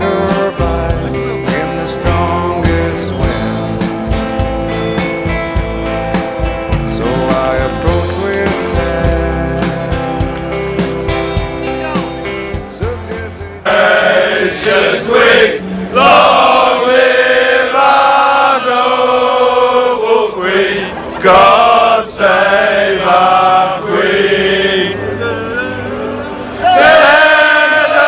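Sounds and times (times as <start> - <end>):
men singing loudly in unison: 0.0 - 3.9, 6.8 - 9.8, 12.7 - 28.0
recorded music: 0.0 - 28.0.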